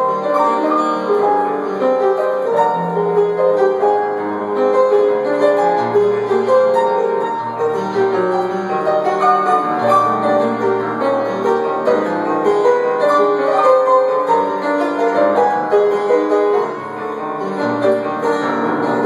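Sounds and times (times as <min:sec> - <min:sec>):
solo piano playing chords and melody: 0:00.0 - 0:19.0.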